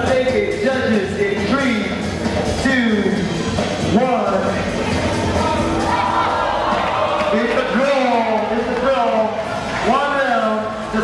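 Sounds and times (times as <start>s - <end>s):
man talking: 0.0s - 2.0s, 2.6s - 3.3s, 3.9s - 4.7s, 7.3s - 11.0s.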